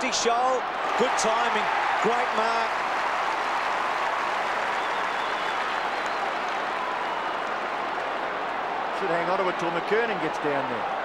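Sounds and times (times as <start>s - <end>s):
crowd clapping: 0.0s - 10.8s
stadium crowd cheering: 0.0s - 11.0s.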